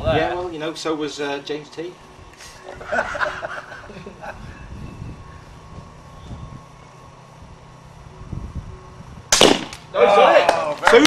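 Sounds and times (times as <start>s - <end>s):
balloon bursting: 9.3s - 9.8s
rifle shot crack: 9.3s - 9.9s.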